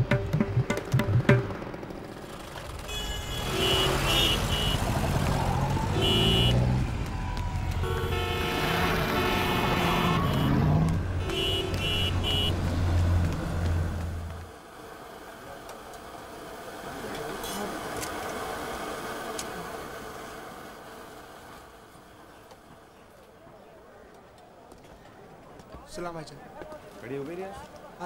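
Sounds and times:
engine rumble: 0.0 - 24.2
car horns beeping: 2.8 - 5.1, 6.0 - 6.7, 7.8 - 13.2.

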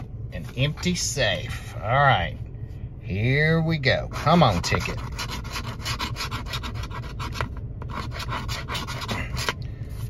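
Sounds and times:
coin scraping scratch-off ticket: 4.0 - 9.6.

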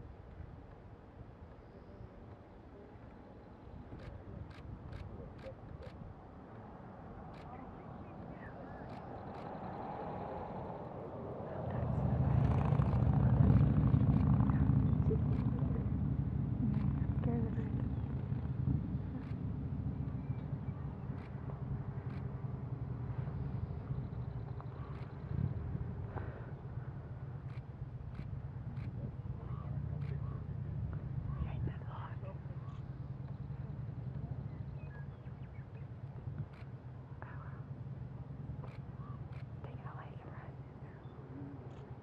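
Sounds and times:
vehicle engine hum: 3.6 - 42.0
faint ticks: 27.4 - 29.0.

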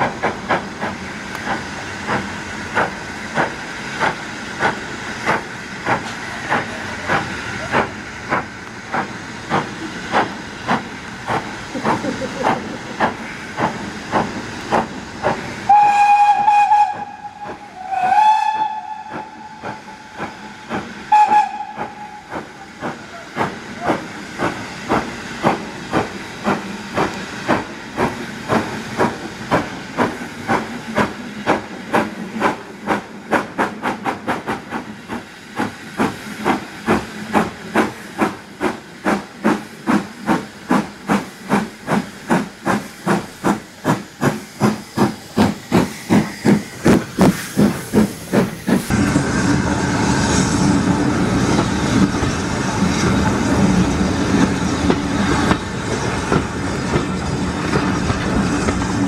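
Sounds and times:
steam hissing: 0.0 - 59.0
steam locomotive chuffing: 0.0 - 59.0
steam locomotive whistle: 15.7 - 23.3.

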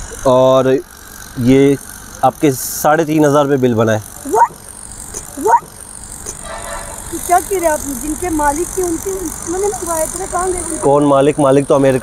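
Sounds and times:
steady background noise: 0.0 - 12.0.

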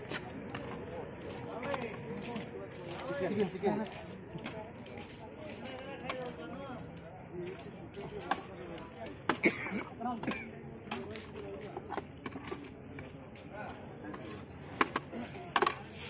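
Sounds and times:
background talk: 0.0 - 16.0.

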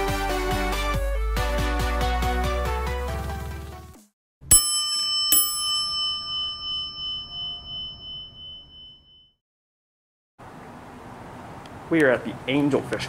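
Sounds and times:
bell struck and ringing: 4.5 - 9.4.

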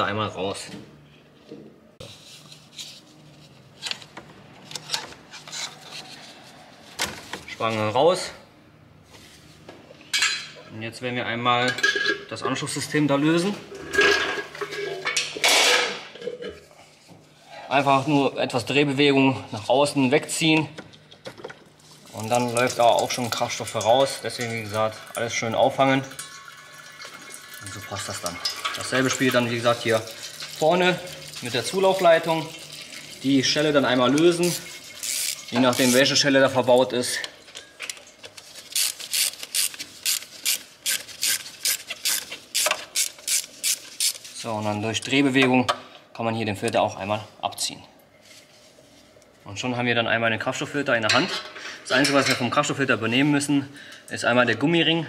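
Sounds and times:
hard parts clattering and scraping: 13.6 - 17.8.

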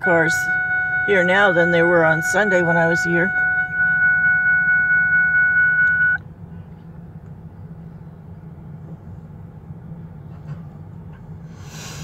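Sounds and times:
electronic beep tone: 0.0 - 6.2
low vehicle hum: 0.0 - 12.0.

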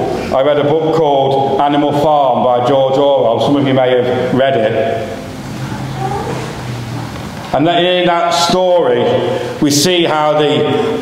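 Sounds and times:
low even hum: 0.0 - 11.0.

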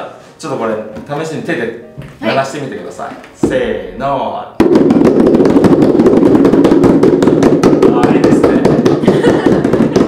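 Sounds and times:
homemade drums beaten by hand: 3.3 - 10.0.

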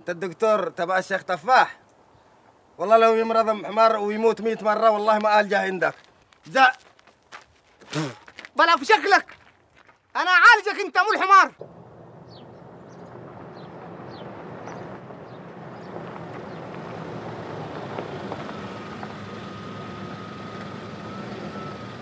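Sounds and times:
car engine hum on dirt track: 11.6 - 22.0.

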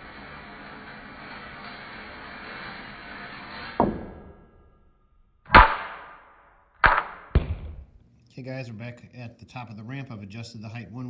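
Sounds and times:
ball rolling on metal track: 0.0 - 4.6
ball bouncing on hard floor: 6.8 - 7.9
ball knocking off track: 6.8 - 7.9.

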